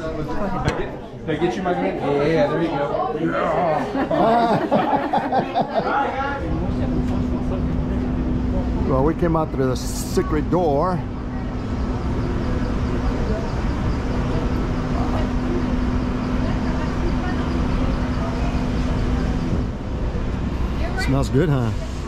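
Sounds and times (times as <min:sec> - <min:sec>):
machinery hum: 0:01.8 - 0:22.0.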